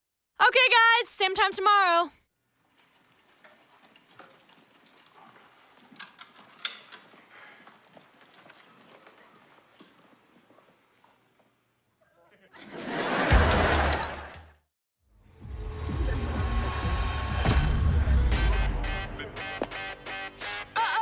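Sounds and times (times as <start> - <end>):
faint shuffling footsteps: 2.7 - 11.6.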